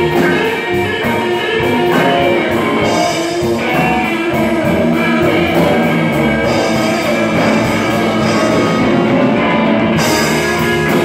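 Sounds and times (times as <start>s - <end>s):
bass guitar: 0.0s - 11.0s
drum kit with cymbal beat: 0.0s - 11.0s
electric guitars: 0.0s - 11.0s.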